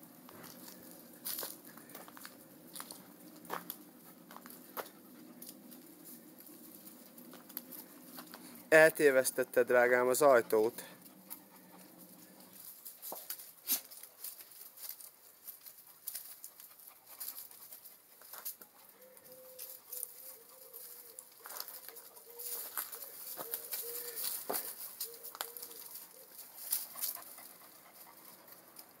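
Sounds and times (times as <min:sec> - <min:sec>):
dogs rustling dry leaves: 0:00.2 - 0:29.0
pigeon cooing: 0:18.8 - 0:27.8.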